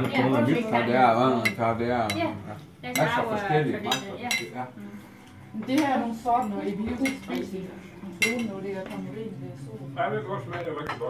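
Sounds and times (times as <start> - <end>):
dishes and cutlery clinking: 1.4 - 4.6, 5.2 - 9.1, 10.5 - 11.0
people talking: 5.6 - 11.0.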